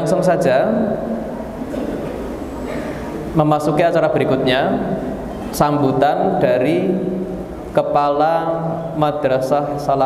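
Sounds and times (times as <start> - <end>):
low hum of room noise: 0.0 - 10.0.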